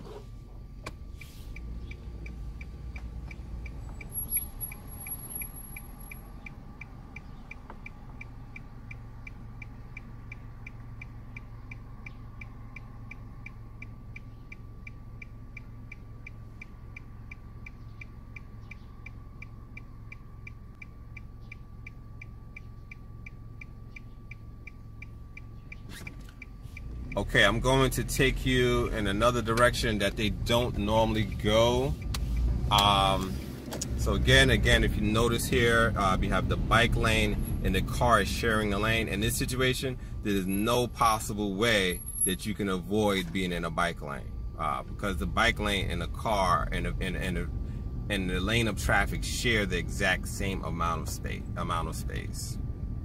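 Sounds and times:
car engine idling: 0:00.0 - 0:53.0
turn signal ticking: 0:00.0 - 0:53.0
faint high whine: 0:34.0 - 0:52.6.

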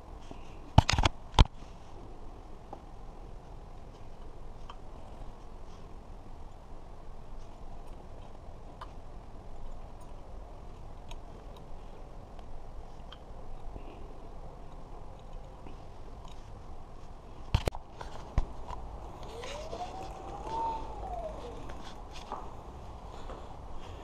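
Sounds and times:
rising and falling tone: 0:19.0 - 0:22.3.

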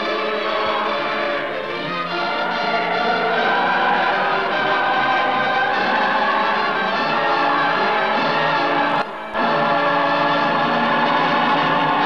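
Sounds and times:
choir singing sustained chords: 0:00.0 - 0:12.0
orchestral film music: 0:00.0 - 0:12.0.

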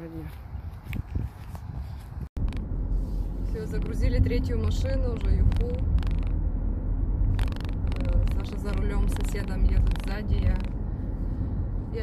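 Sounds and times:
low outdoor rumble: 0:00.0 - 0:12.0
car cabin rumble while driving: 0:02.3 - 0:12.0.

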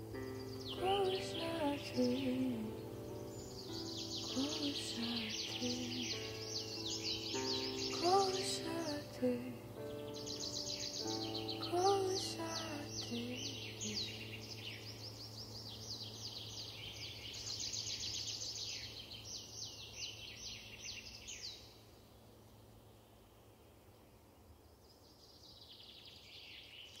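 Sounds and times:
small songbirds chirping: 0:00.0 - 0:27.0.

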